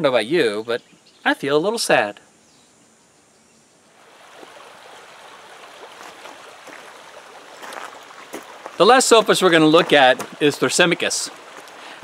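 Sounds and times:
river running over rocks: 4.0 - 12.0
small water splashes: 4.0 - 12.0.

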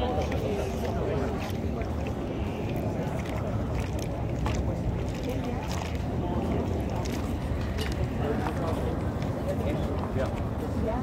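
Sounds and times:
voices of passers-by: 0.0 - 11.0.

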